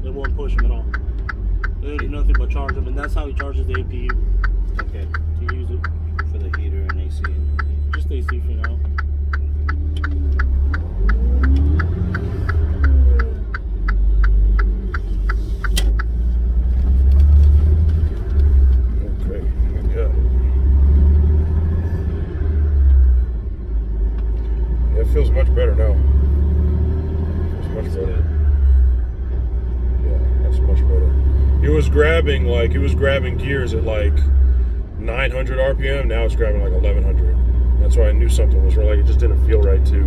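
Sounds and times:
fast even ticking: 0.0 - 16.2
truck rumble from inside cab: 0.0 - 40.0.

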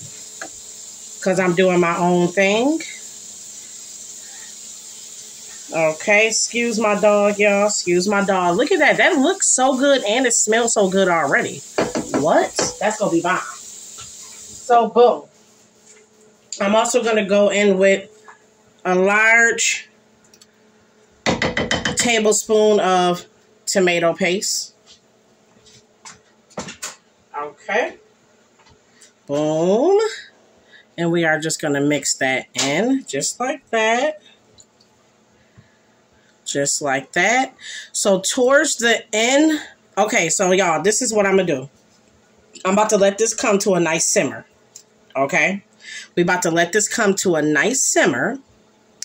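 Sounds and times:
pan hissing on gas stove: 0.0 - 15.9
faint kitchen hum: 0.0 - 49.0
sharp knocks: 21.2 - 22.1.

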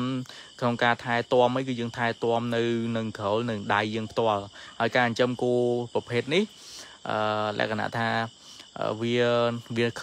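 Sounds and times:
crickets chirring: 0.0 - 10.0
man talking: 0.0 - 10.0.

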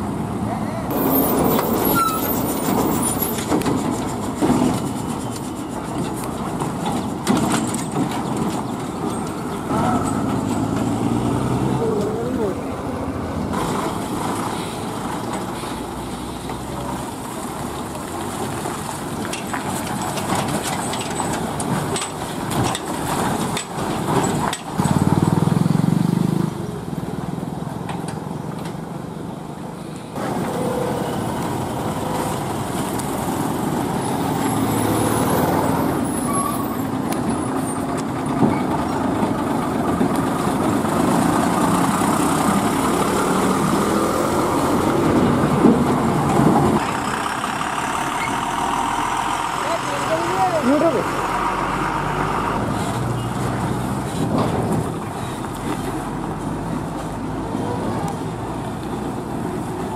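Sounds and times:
diesel lorries driving slowly: 0.0 - 59.9
background voices: 9.7 - 15.7.

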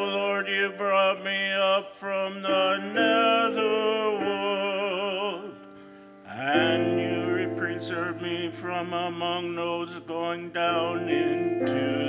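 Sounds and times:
held keyboard accompaniment: 0.0 - 12.0
person singing with vibrato: 0.0 - 12.0.

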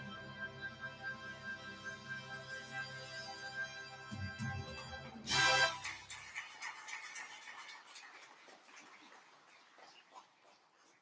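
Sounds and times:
choir and accompaniment: 5.2 - 5.8.

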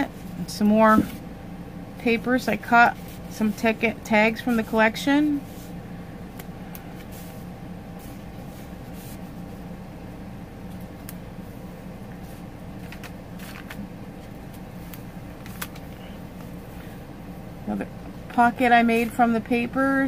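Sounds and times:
steady low hum: 0.0 - 20.0
paper pages rustling: 12.2 - 16.0.

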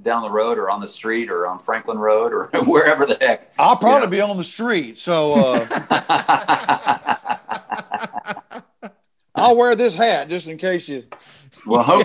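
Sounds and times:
man chuckling: 5.3 - 9.0.

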